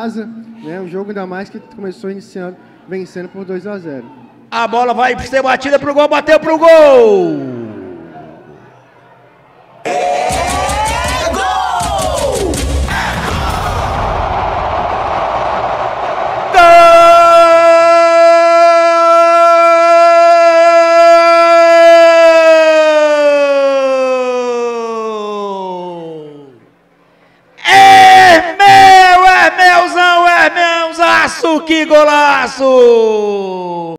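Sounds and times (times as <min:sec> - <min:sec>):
crowd noise: 0:00.0 - 0:05.7, 0:07.4 - 0:19.6
commentator yelling: 0:09.9 - 0:13.8, 0:16.5 - 0:26.6, 0:27.6 - 0:33.9.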